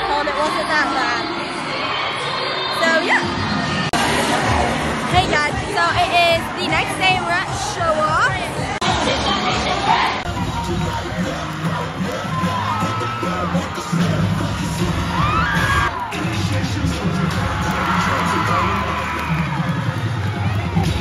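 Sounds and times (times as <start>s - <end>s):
music with pounding beat: 3.9s - 21.0s
crowd cheering and screaming: 8.8s - 21.0s.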